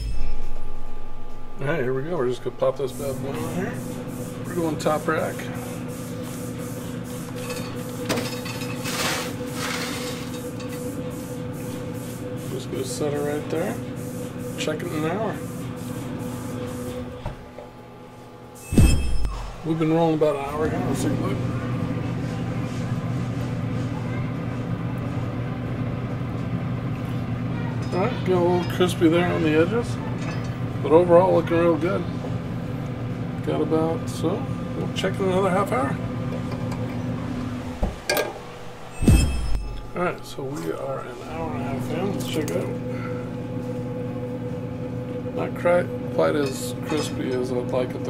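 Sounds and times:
bright chime ringing: 0.0s - 3.0s
fan humming: 0.0s - 48.0s.

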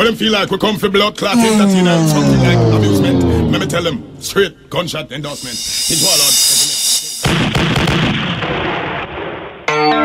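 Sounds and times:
explosion sound effect: 1.3s - 4.5s.

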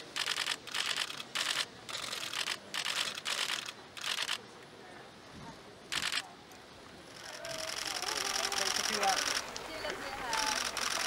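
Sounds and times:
camera shutter clicks: 0.0s - 4.4s, 5.9s - 6.2s, 7.5s - 9.6s, 10.4s - 11.0s.

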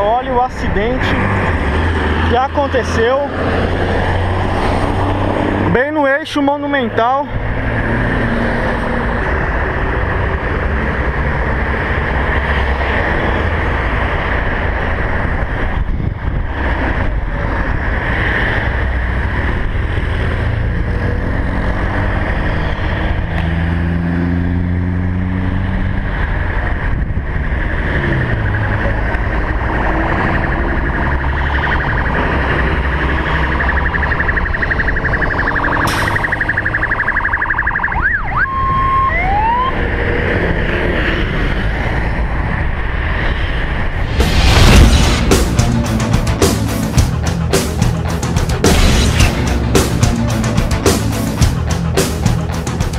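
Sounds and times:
road traffic noise: 0.0s - 52.9s
siren whoops: 29.2s - 40.3s.

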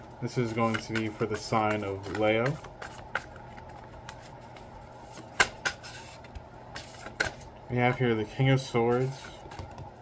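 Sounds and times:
faint steady hum: 0.0s - 10.0s
cards shuffled by hand: 0.4s - 7.5s.

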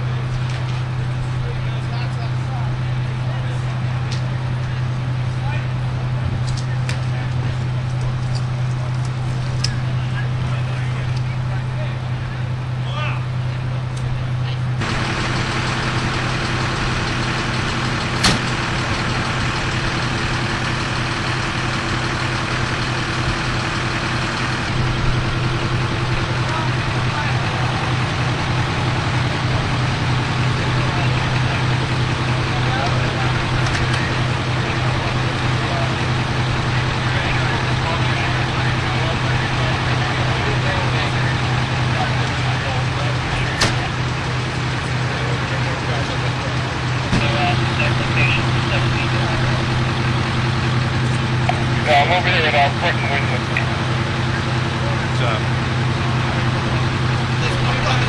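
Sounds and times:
indistinct voices: 0.0s - 58.0s
large engine idling: 0.0s - 58.0s.

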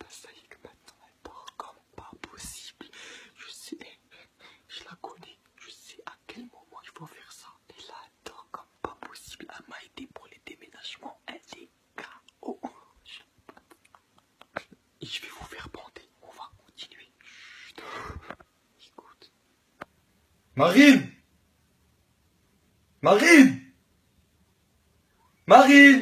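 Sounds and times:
man whispering: 0.0s - 19.4s, 25.4s - 26.0s.

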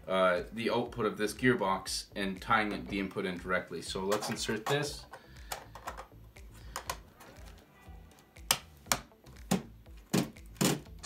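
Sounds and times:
plastic clicks and knocks: 4.1s - 7.0s.

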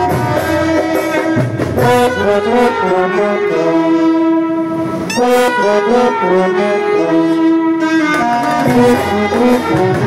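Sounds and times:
saxophone and trumpet playing: 0.0s - 10.0s.

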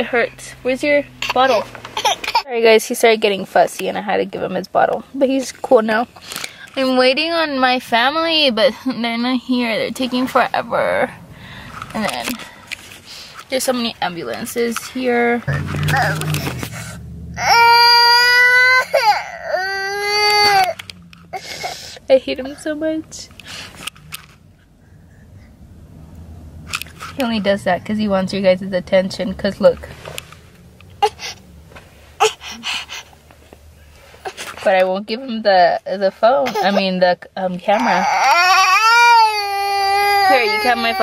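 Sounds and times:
infant crying: 15.5s - 21.9s, 37.8s - 41.0s.

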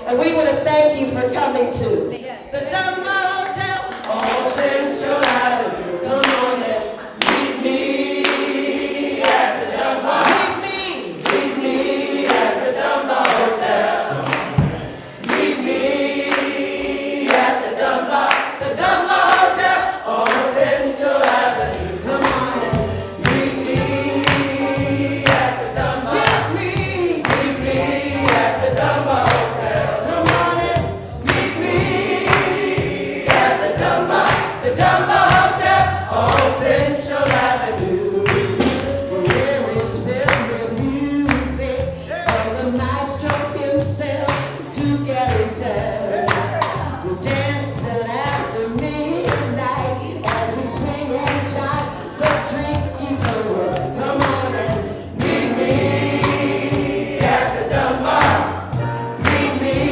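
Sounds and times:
group singing: 2.6s - 59.9s
hand-clapping: 7.2s - 7.6s, 9.2s - 9.5s, 11.2s - 11.6s, 14.2s - 15.7s, 39.3s - 40.5s, 42.2s - 43.5s, 46.3s - 46.8s
low bass: 21.4s - 33.0s, 33.6s - 59.9s.

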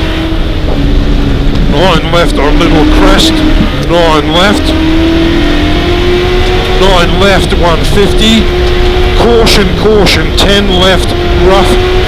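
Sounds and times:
car engine revving: 0.0s - 12.0s
low road rumble: 0.0s - 12.0s.

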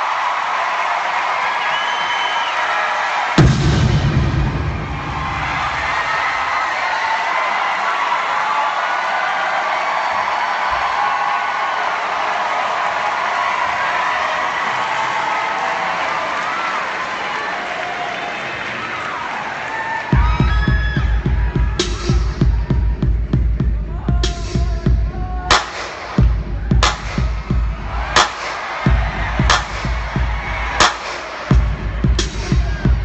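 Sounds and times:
crowd applauding and cheering: 0.0s - 33.0s
song with heavy bass beat: 3.4s - 6.3s, 20.2s - 33.0s.

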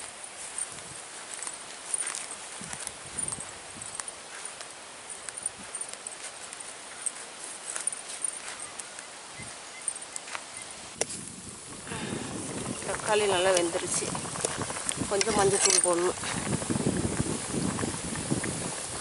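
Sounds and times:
footsteps on grass and earth: 0.0s - 19.0s
leaves rustling: 0.0s - 19.0s
outdoor hiss: 0.0s - 19.0s
faint high chirps: 7.8s - 10.8s.

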